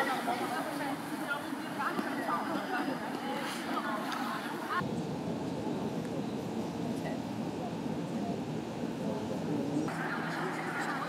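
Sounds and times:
women chattering: 0.0s - 4.8s.

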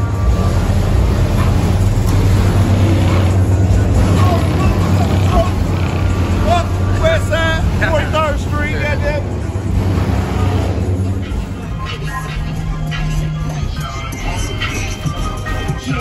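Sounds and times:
car engines idling: 0.0s - 16.0s.

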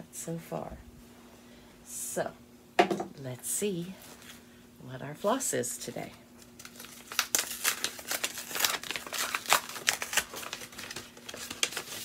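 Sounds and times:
wrapping crinkling: 6.4s - 12.0s.

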